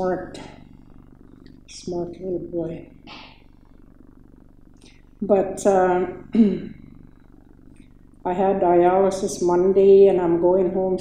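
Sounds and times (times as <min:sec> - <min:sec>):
faint low hum: 0:00.0 - 0:11.0
woman clearing her throat: 0:06.3 - 0:06.8.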